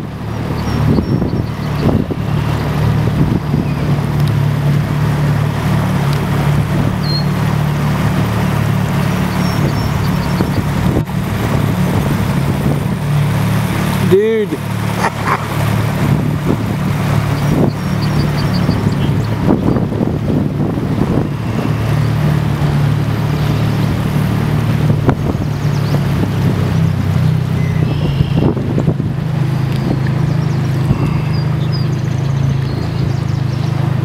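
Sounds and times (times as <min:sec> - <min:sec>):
boat engine droning: 0:00.0 - 0:34.0.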